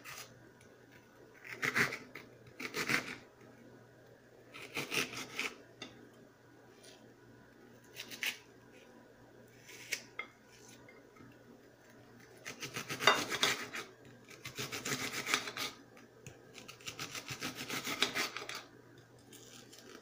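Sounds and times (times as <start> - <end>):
knife dicing onion on plate: 12.4 - 15.8, 16.6 - 18.6.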